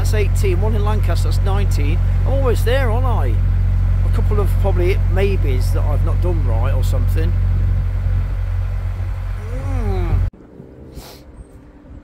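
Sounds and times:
diesel engine droning: 0:00.0 - 0:12.0
drawn-out voice sound: 0:09.4 - 0:10.3.

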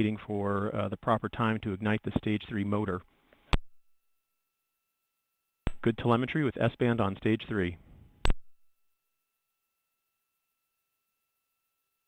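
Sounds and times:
sharp click: 0:08.2 - 0:08.5.

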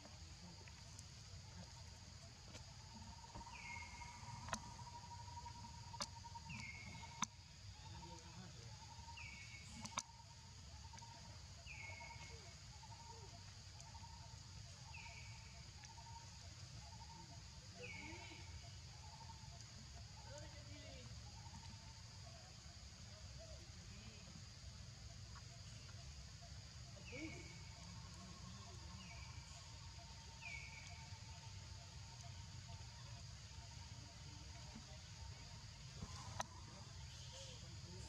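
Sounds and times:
insects droning: 0:00.0 - 0:38.0.

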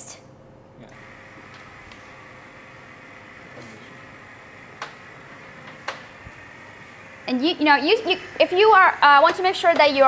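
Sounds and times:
air pump humming: 0:00.8 - 0:10.0.

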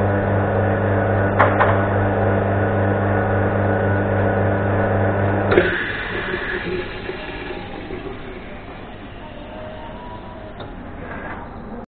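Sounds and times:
espresso machine hiss: 0:05.5 - 0:10.6.

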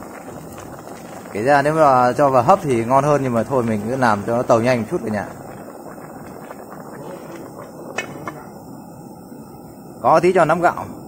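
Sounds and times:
water boiling in a pot: 0:00.0 - 0:11.0.

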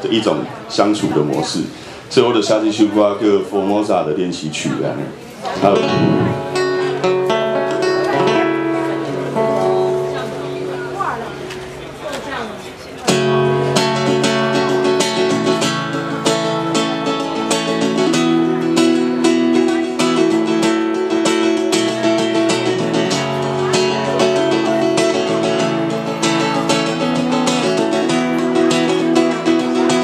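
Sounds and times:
acoustic guitar playing: 0:05.4 - 0:30.0.

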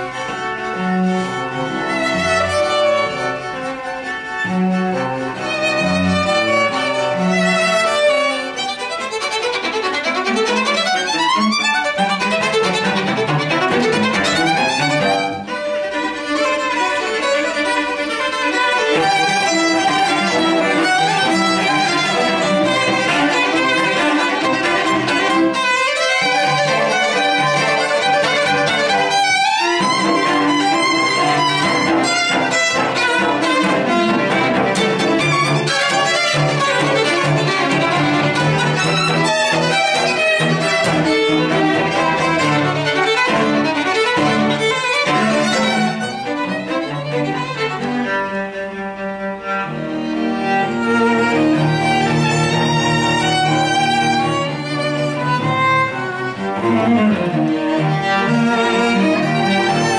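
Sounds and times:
string trio playing classical piece: 0:00.0 - 0:59.9.

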